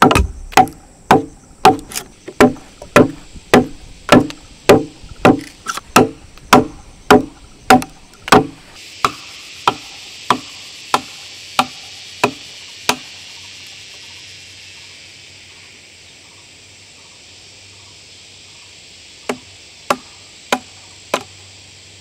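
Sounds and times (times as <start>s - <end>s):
wooden mallet striking timber: 0.0s - 13.0s
high drone of insects: 0.0s - 22.0s.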